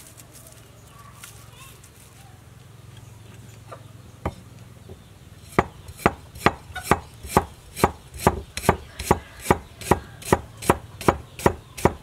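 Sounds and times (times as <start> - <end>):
cleaver slicing ginger: 5.5 - 12.0
knocking on wooden chopping block: 5.6 - 12.0.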